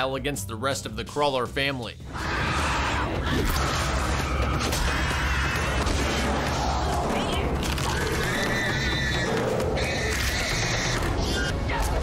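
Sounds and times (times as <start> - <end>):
horror film music: 0.0 - 12.0.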